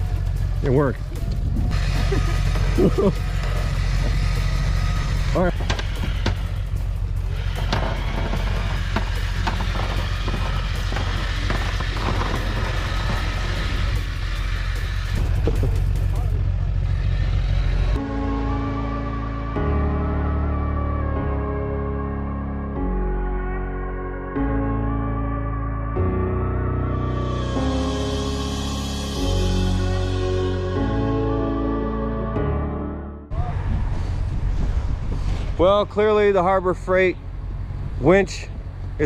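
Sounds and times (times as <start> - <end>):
steady low rumble: 0.0 - 21.8, 22.7 - 39.0
man laughing: 1.9 - 3.4
scattered knocks: 7.6 - 13.2.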